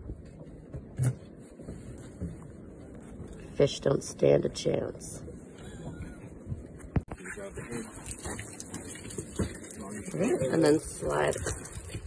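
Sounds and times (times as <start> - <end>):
background noise: 0.0 - 12.0.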